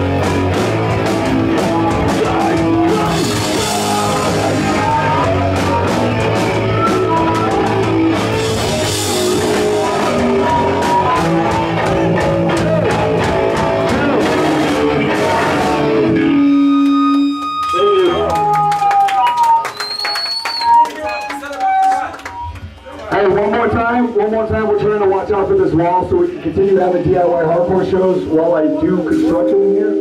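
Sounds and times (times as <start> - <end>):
scattered guitar notes: 0.0 - 18.5, 26.8 - 30.0
punk band playing live: 0.0 - 20.9, 22.2 - 30.0
people talking: 23.0 - 30.0.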